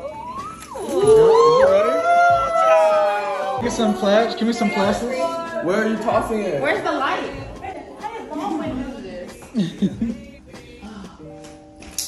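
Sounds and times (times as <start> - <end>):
people shouting woo together: 0.0 - 5.7.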